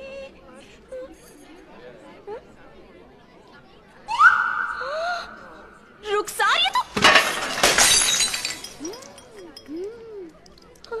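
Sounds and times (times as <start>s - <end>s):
pieces clattering: 6.8s - 9.8s
vase crashing and shattering: 6.9s - 9.4s.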